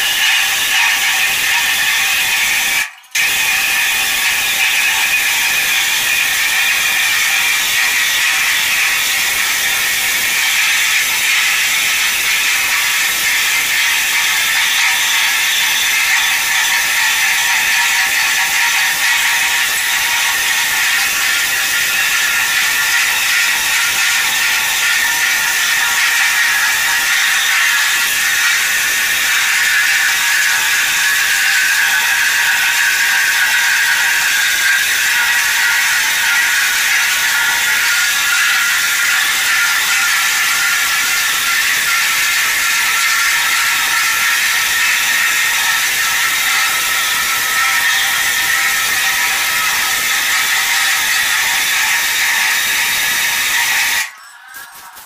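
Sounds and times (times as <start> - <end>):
floor grinding machine: 0.0 - 55.0.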